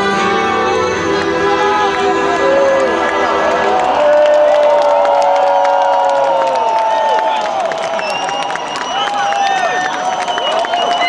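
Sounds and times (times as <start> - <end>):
crowd cheering and clapping: 0.0 - 11.0
crowd shouts and screams: 0.0 - 11.0.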